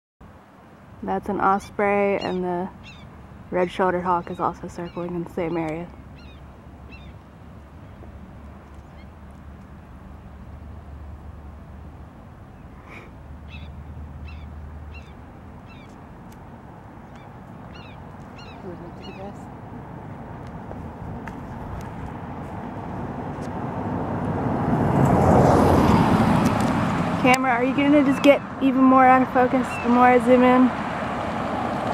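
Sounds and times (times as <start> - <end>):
distant bird whistled chirps: 2.2 - 3.1, 4.2 - 7.2, 13.5 - 15.9, 17.1 - 19.3
motor vehicle approaching: 2.2 - 31.9.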